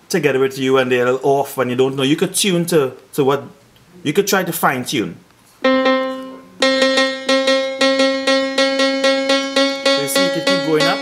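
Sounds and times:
steelpan note struck rapidly: 5.6s - 11.0s.

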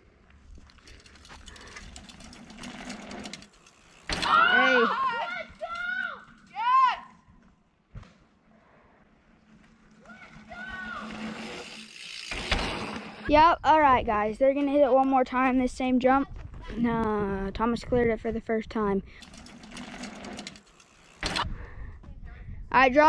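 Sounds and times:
riders shouting calls: 4.1s - 7.2s, 10.0s - 11.4s.

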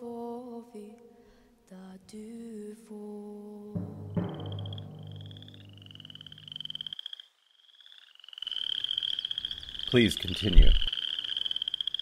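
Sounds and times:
low sustained hum: 4.0s - 6.8s
pulsing frog-like trills: 4.1s - 12.0s.

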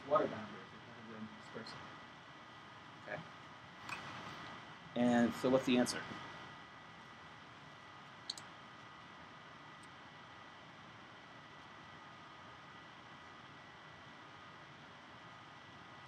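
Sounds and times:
faint steady hiss: 0.0s - 16.0s.

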